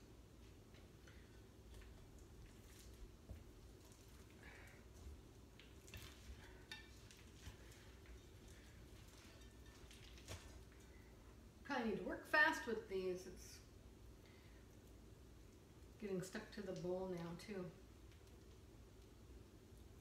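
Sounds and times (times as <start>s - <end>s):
low steady hum: 0.0s - 20.0s
woman speaking: 11.7s - 13.7s, 16.0s - 17.8s.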